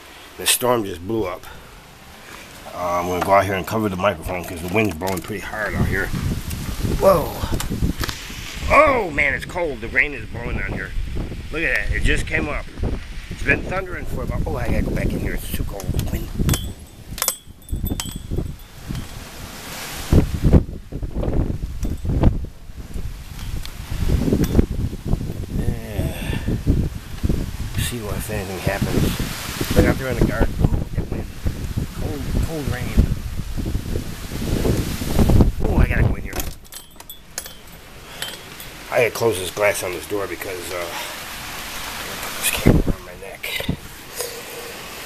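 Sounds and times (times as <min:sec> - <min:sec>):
storm wind buffeting microphone: 0:02.8 - 0:44.1
door latch clicks: 0:36.3 - 0:37.6.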